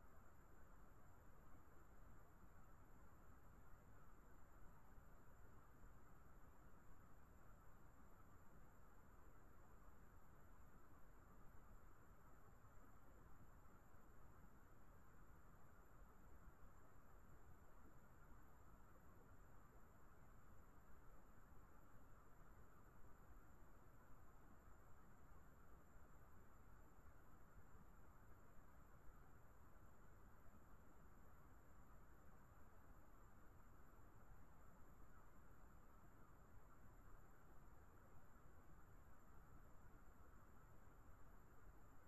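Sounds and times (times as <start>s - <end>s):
faint steady hiss: 0.0s - 42.0s.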